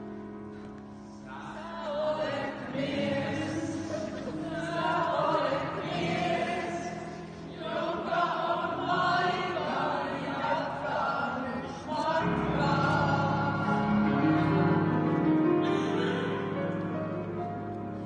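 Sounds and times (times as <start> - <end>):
group of people singing: 1.2 - 16.4.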